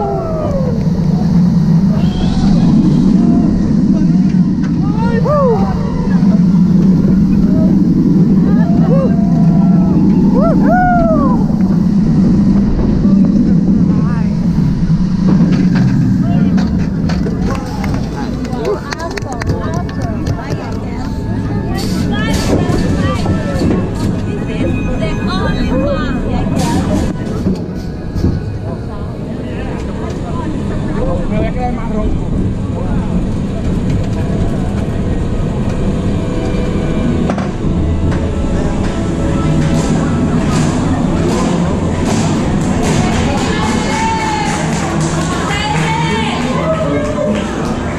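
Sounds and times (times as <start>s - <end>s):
wind rushing: 0.0s - 18.9s
roller coaster wheels rumbling on track: 0.0s - 47.9s.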